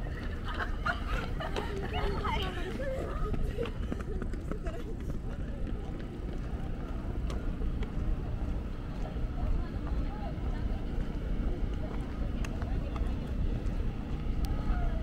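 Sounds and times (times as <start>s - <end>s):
faint voices: 0.0s - 15.0s
steady low rumble: 0.0s - 15.0s.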